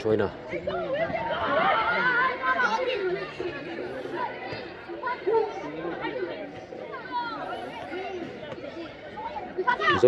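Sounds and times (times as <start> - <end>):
overlapping voices chattering: 0.0 - 10.0.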